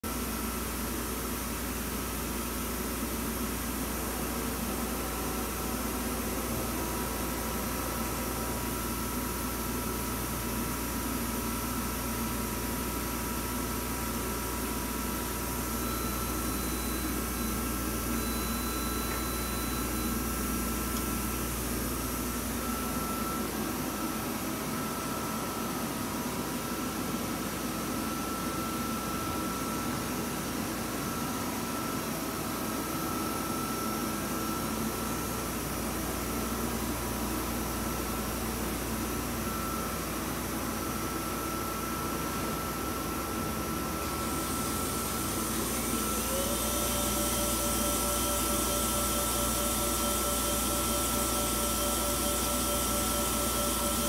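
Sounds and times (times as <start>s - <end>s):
machine hum and hiss: 0.0s - 54.0s
high steady whine: 15.3s - 54.0s.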